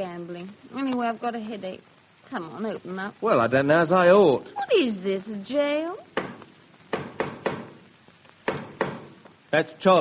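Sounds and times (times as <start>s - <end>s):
knocking on wooden door: 6.1s - 9.2s.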